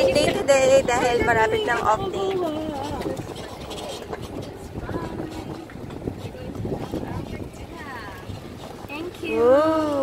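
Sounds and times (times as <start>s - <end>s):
faint voices talking: 0.0s - 10.0s
wind on microphone: 0.0s - 10.0s.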